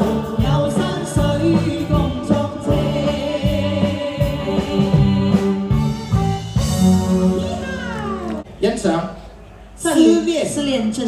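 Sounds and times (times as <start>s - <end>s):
live band song: 0.0s - 8.5s
high drawn-out voice: 7.4s - 8.5s.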